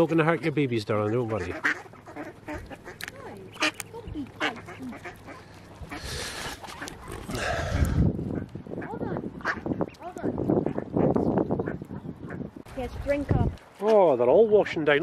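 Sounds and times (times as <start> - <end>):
ducks quacking: 0.0 - 12.7.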